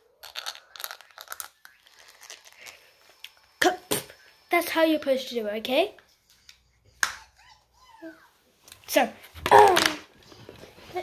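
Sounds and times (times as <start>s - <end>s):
toothbrush scrubbing teeth: 0.2s - 3.5s.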